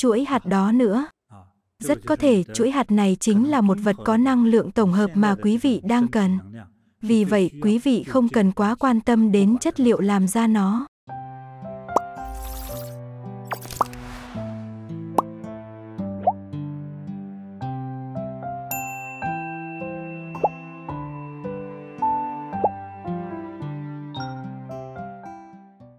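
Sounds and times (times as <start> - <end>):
background music melody: 11.2 - 25.7.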